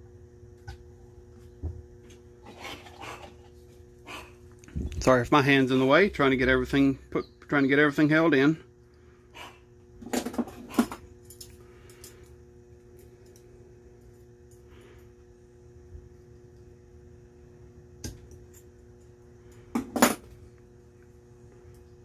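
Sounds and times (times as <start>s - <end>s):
steady low hum: 0.0s - 22.0s
small metal clicks and clinks: 11.2s - 12.3s.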